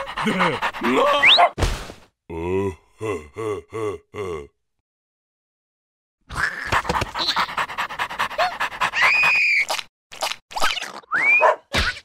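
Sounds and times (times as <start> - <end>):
cartoon character grunting: 2.3 - 4.6.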